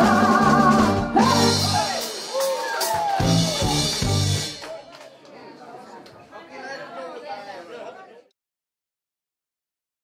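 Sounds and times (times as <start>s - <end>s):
indistinct chatter of people: 3.6s - 8.3s.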